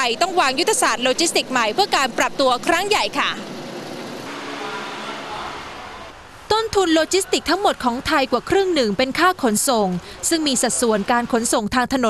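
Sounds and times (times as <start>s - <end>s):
faint engine drone: 0.0s - 6.5s
lorries road noise: 0.0s - 12.0s.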